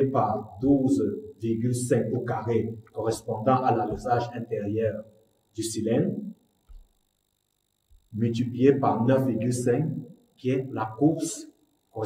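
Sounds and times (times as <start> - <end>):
man speaking: 0.0 - 5.0, 5.6 - 6.3, 8.1 - 11.4.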